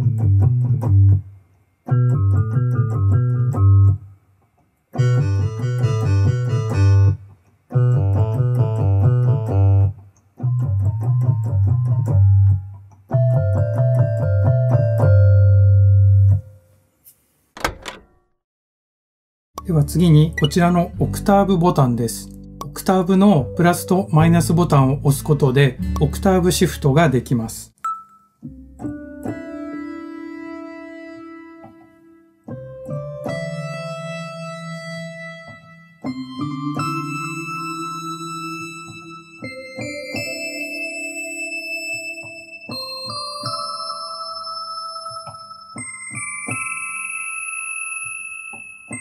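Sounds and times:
bell-like synthesizer notes: 36.2 - 49.0.

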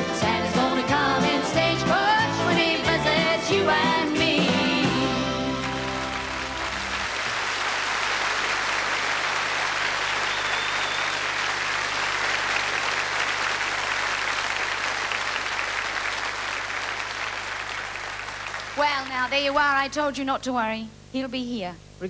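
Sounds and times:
audience applauding: 4.8 - 19.3.

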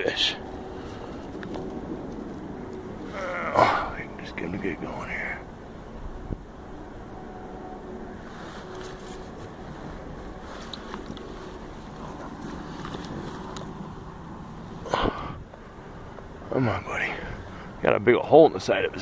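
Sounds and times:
wind rumble on microphone: 0.0 - 7.6, 8.2 - 16.4.

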